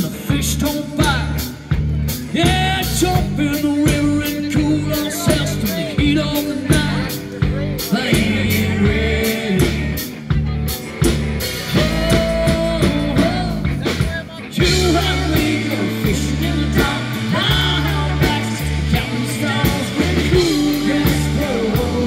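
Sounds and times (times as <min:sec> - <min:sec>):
drum-kit beat: 0:00.0 - 0:22.0
live rock band playing: 0:00.0 - 0:22.0.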